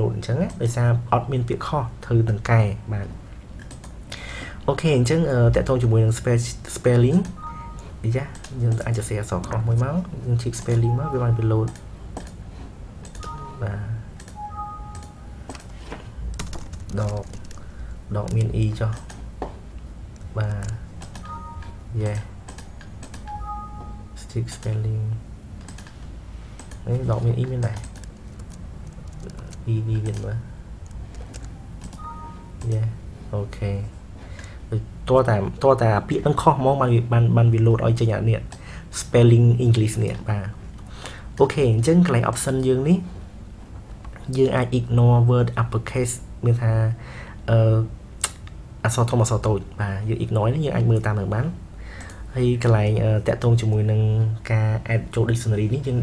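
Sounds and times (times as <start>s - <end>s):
computer mouse clicks: 3.6s - 4.0s, 11.6s - 12.4s, 13.0s - 13.4s, 14.2s - 17.6s, 18.2s - 19.2s, 20.2s - 21.3s, 22.1s - 23.3s, 25.6s - 26.0s, 26.6s - 26.8s, 27.4s - 32.8s, 52.0s - 52.2s.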